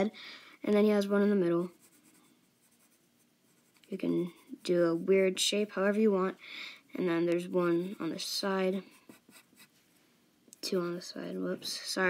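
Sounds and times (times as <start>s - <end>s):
pencil scratching on paper: 1.3s - 6.2s, 7.4s - 9.7s.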